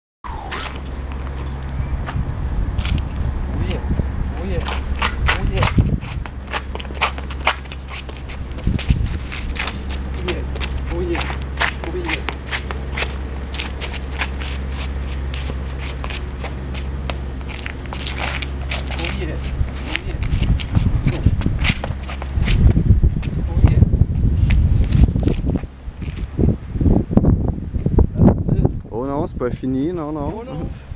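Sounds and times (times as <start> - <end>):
steady low hum: 0.2 - 30.0
sneakers scuffing on concrete: 4.6 - 23.4.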